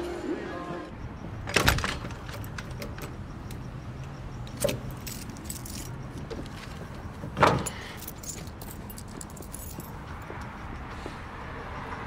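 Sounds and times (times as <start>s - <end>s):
wooden door shutting: 1.4s - 3.1s, 7.3s - 7.8s
metal jangling like keys: 1.5s - 10.6s.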